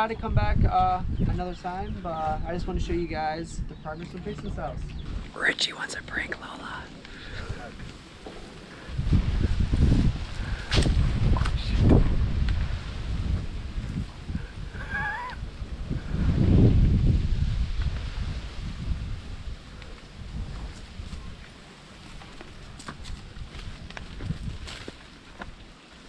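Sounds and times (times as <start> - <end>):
wind rumbling on microphone: 0.0 - 26.0
microphone handling noise: 6.9 - 21.3
wavering animal call: 14.7 - 15.4.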